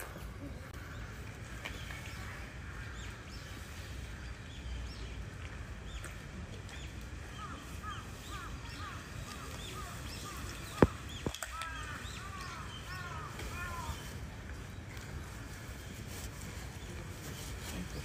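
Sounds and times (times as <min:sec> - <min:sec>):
birds chirping: 0:00.0 - 0:18.0.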